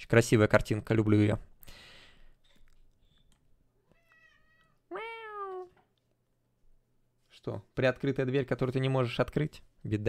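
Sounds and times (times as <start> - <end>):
cat meowing: 3.8 - 5.8.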